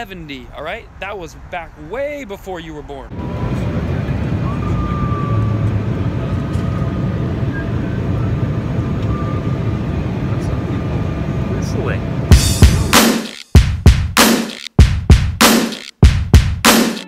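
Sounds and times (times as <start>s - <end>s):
airliner cabin noise: 3.3s - 13.0s
person whistling long note: 4.4s - 5.8s.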